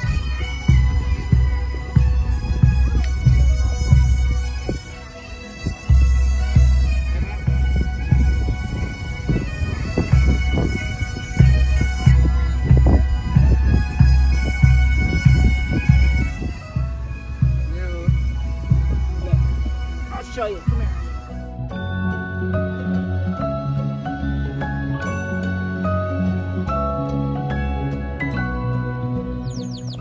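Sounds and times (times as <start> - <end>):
bass drum beating: 0.0 - 4.9, 5.7 - 20.1
bagpipes playing over drone: 0.0 - 30.0.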